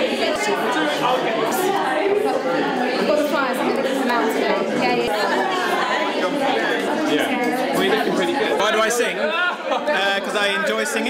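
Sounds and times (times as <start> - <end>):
babble of conversations: 0.0 - 11.0.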